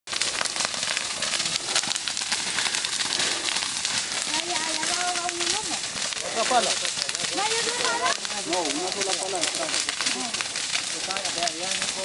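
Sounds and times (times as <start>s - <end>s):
fire crackling and popping: 0.1s - 12.0s.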